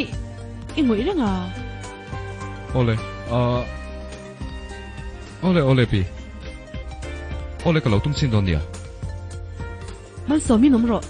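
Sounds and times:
sustained background music: 0.0s - 11.0s.

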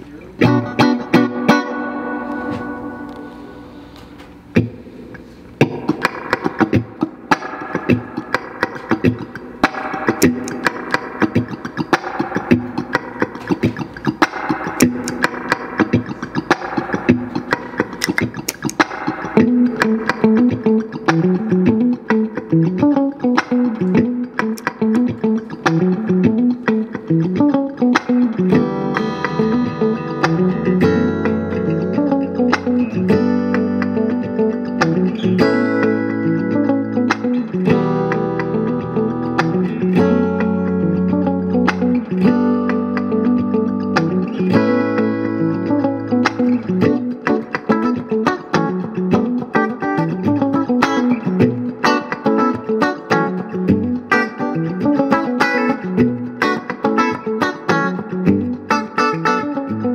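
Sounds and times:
electric guitar strumming: 0.0s - 59.9s.

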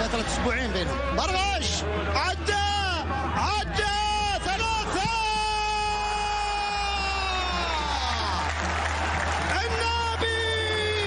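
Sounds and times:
man commentating excitedly: 0.0s - 8.2s
long drawn-out shout: 5.2s - 8.6s.

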